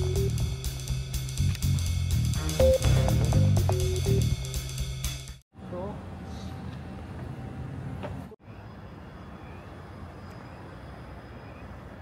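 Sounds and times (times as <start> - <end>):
traffic rumble: 5.6 - 12.0.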